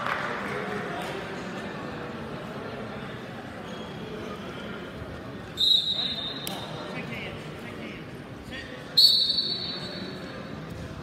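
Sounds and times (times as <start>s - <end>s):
crowd murmur: 0.0s - 11.0s
referee's whistle blasts: 5.6s - 6.7s, 9.0s - 10.2s.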